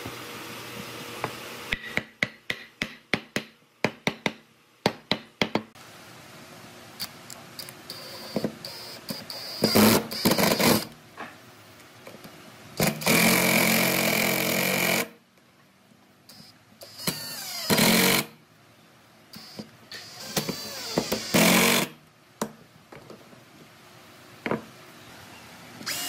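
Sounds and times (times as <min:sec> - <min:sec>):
cordless drill driving screws: 0:19.4 - 0:21.9.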